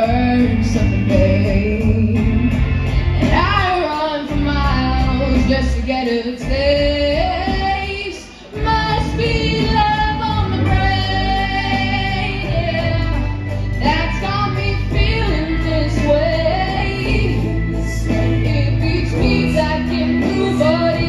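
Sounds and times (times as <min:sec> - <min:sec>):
backing track music: 0:00.0 - 0:21.0
woman singing slow song: 0:00.0 - 0:21.0.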